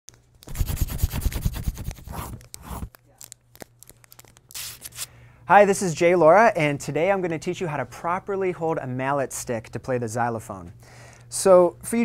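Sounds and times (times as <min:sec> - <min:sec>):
paper crinkling and scribbling: 0:00.4 - 0:05.1.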